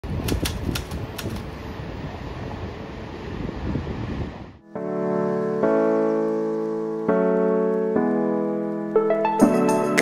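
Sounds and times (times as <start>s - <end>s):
wind buffeting microphone: 0.0s - 4.6s
sharp clicks: 0.2s - 1.5s.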